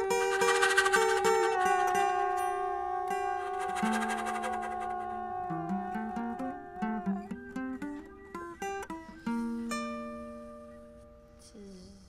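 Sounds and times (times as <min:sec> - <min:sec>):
held flute note: 0:00.0 - 0:09.7
plucked guitar notes: 0:00.0 - 0:11.2.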